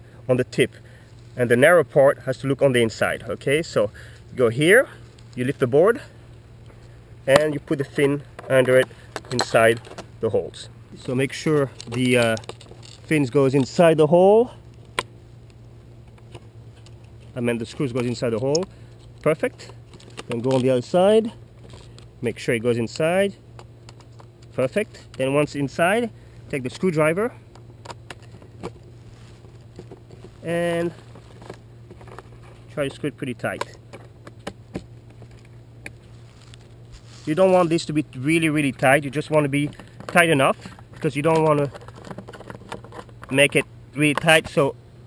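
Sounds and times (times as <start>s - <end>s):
low steady hum: 0.0s - 45.0s.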